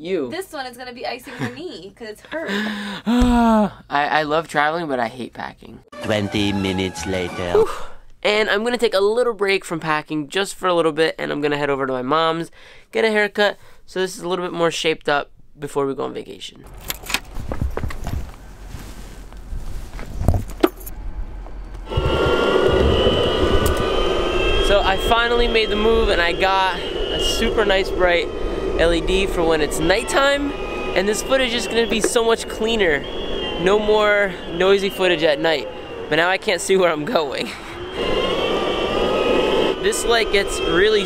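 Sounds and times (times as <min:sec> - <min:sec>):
footsteps: 0:16.8 - 0:23.9
electric motor whine: 0:21.3 - 0:41.0.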